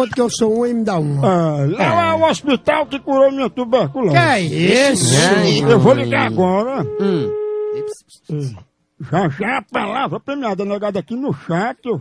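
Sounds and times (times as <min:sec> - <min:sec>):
person speaking: 0:00.0 - 0:08.7
telephone line tone: 0:04.7 - 0:08.0.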